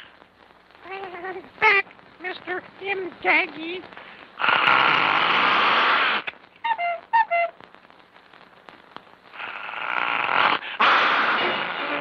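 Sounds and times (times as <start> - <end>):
harsh cartoon animal growl: 9.4 - 12.0.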